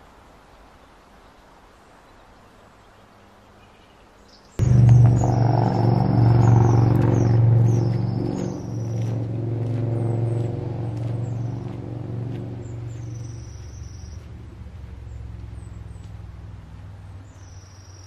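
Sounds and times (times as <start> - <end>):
loud low rumble: 4.6 - 16.2.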